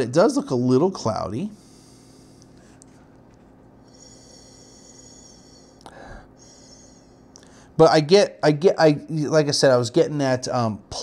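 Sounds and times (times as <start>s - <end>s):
room hum and hiss: 0.0s - 11.0s
person sniffing: 3.9s - 7.7s.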